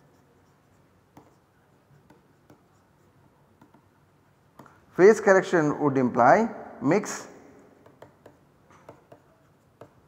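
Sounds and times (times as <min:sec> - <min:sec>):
pen writing on paper: 0:00.0 - 0:03.9, 0:07.9 - 0:10.0.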